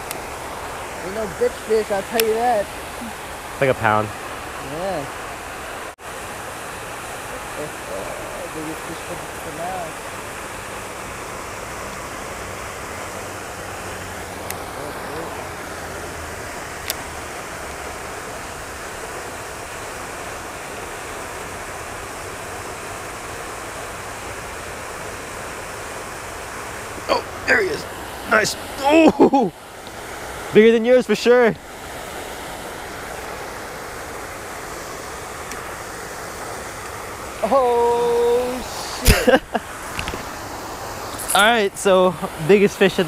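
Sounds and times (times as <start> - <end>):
fountain spray rushing water: 0.0 - 43.0.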